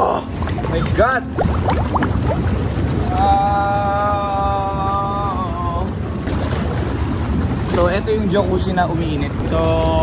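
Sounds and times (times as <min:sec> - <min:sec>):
jacuzzi jets churning water: 0:00.0 - 0:10.0.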